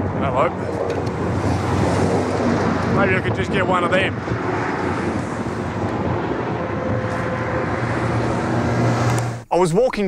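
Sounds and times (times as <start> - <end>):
distant helicopter drone: 0.0 - 9.4
wind noise on microphone: 0.0 - 9.4.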